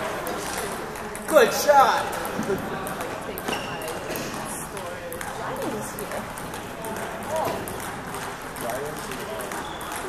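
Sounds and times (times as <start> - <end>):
people chattering: 0.0 - 10.0
table tennis ball clicking: 0.2 - 1.4, 2.1 - 10.0.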